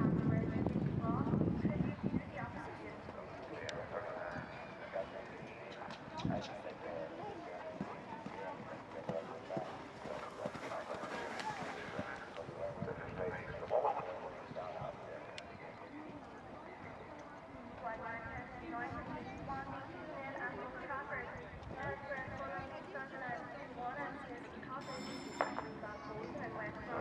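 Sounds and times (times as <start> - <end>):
people talking faintly: 0.0 - 27.0.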